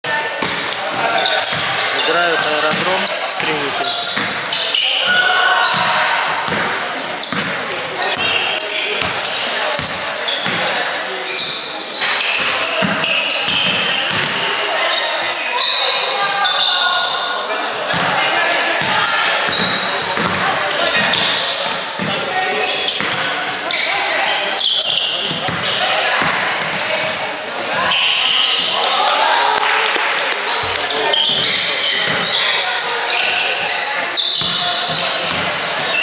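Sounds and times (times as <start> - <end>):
echoing chatter: 0.0 - 36.0
basketball bouncing on wooden court: 0.4 - 1.8, 2.6 - 4.6, 5.6 - 8.3, 9.0 - 10.7, 12.4 - 14.4, 18.8 - 21.3, 23.0 - 23.3, 25.3 - 27.9, 30.7 - 32.4, 34.4 - 35.9
basketball bouncing on wooden floor: 4.1 - 4.4, 6.5 - 6.7, 19.5 - 20.4.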